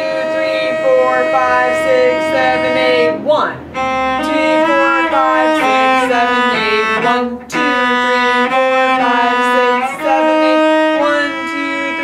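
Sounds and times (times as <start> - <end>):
cello sustained bowed notes: 0.0 - 12.0.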